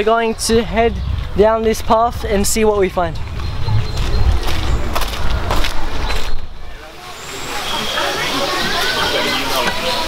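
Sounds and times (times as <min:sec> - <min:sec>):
wind rumble on microphone: 0:00.0 - 0:06.8
indistinct voices: 0:00.0 - 0:10.0
microphone handling noise: 0:00.4 - 0:06.5
footsteps on dirt path: 0:00.6 - 0:06.5.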